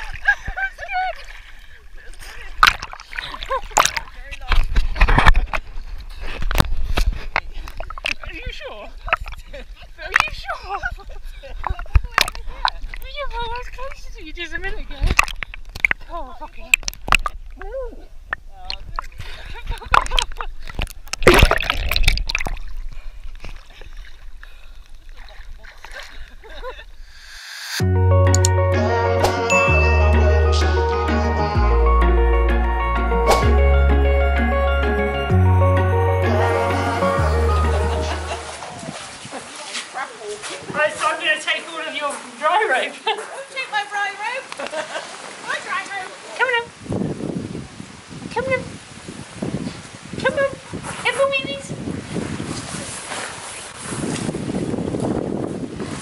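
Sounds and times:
water sloshing and splashing: 0.0s - 26.9s, 38.1s - 42.4s, 43.7s - 56.0s
low rumble of water: 0.0s - 27.1s, 37.8s - 40.4s, 44.8s - 56.0s
background music: 27.8s - 38.8s.

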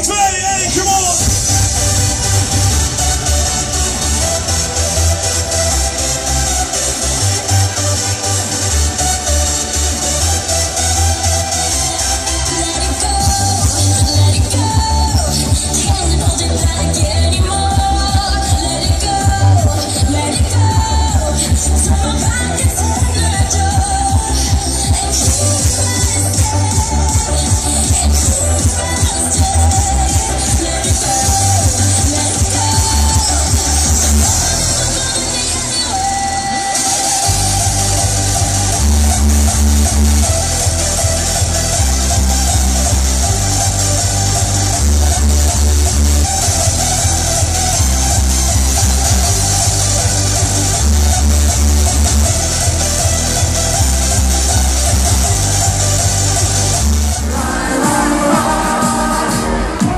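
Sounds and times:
pounding bass beat: 0.0s - 35.4s, 36.8s - 59.9s
electronic dance music: 0.0s - 59.9s.

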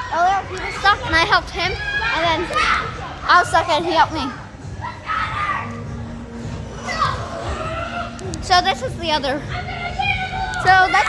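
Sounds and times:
children playing: 0.0s - 6.0s, 6.6s - 11.0s.

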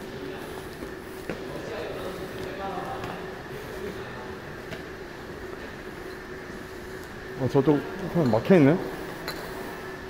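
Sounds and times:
steady mechanical hum: 0.0s - 10.0s.

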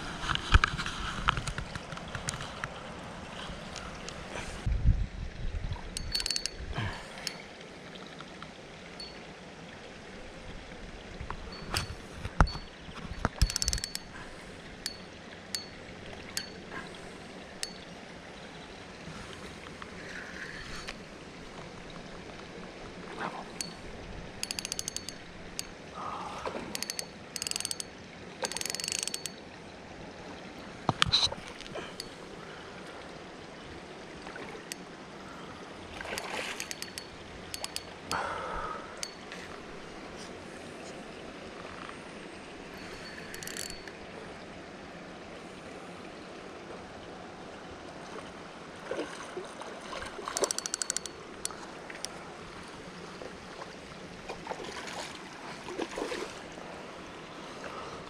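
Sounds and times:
spinning reel: 6.0s - 6.6s, 13.4s - 14.1s, 24.4s - 25.7s, 26.7s - 29.4s, 36.6s - 37.9s, 42.8s - 43.9s, 50.4s - 51.2s
fishing tackle clicks and rattles: 6.0s - 7.4s, 11.5s - 14.2s, 24.4s - 25.8s, 26.7s - 29.4s, 36.0s - 38.2s, 42.8s - 44.0s, 50.3s - 52.2s.

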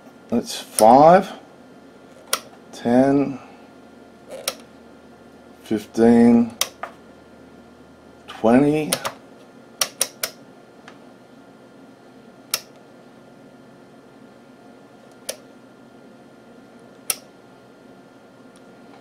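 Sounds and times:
steady low hum: 0.0s - 19.0s
rotary switch clicking: 2.3s - 2.5s, 4.4s - 4.7s, 6.6s - 6.9s, 9.8s - 10.4s, 12.5s - 12.8s, 17.0s - 17.3s.

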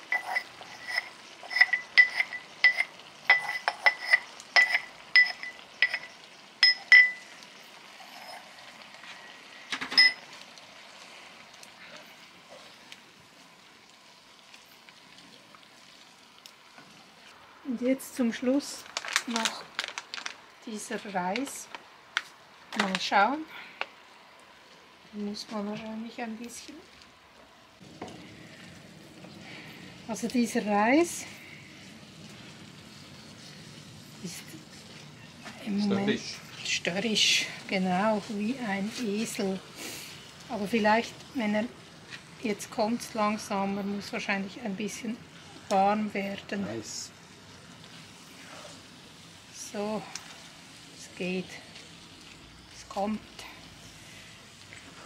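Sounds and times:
food sizzling in a skillet: 0.0s - 55.0s.

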